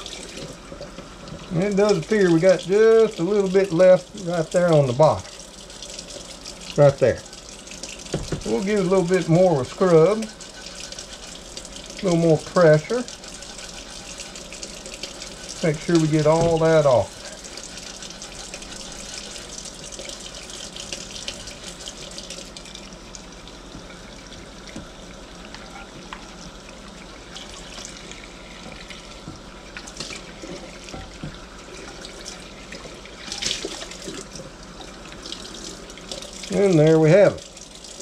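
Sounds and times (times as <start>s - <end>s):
tap running into metal sink: 8.1s - 8.6s, 16.2s - 16.9s
skillet being scrubbed: 8.4s - 22.0s.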